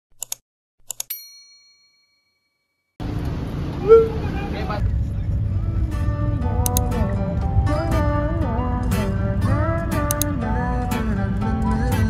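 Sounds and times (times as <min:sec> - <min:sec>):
bright bell ding: 0:01.1 - 0:02.6
van cabin road rumble: 0:03.0 - 0:12.0
music: 0:05.4 - 0:12.0.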